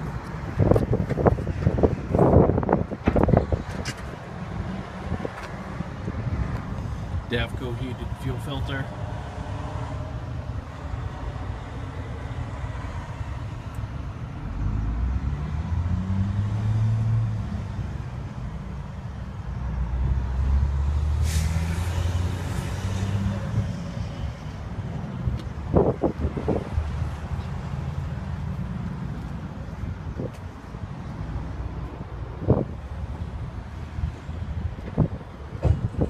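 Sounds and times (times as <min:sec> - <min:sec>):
diesel engine revving: 0:04.4 - 0:29.2
hiss: 0:21.2 - 0:22.7.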